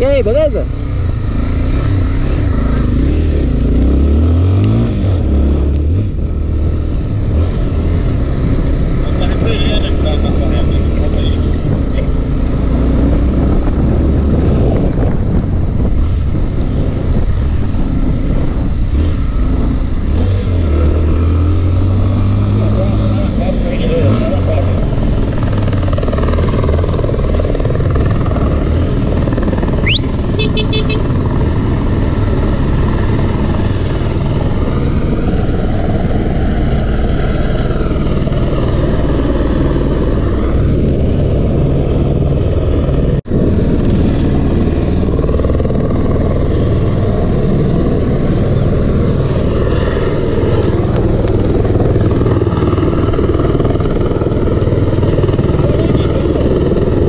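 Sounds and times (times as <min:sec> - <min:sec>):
motorcycle engine running: 0:21.9 - 0:57.0.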